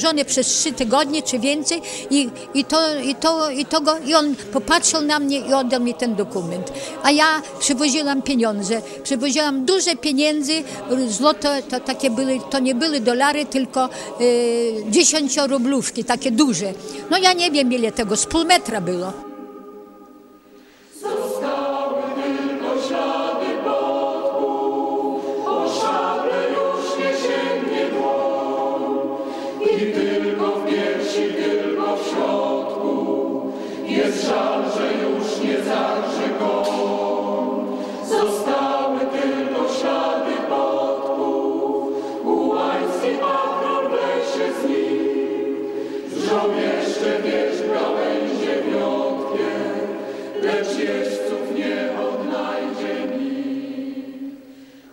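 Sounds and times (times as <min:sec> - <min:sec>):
choir singing: 0:00.0 - 0:15.6, 0:16.8 - 0:54.6.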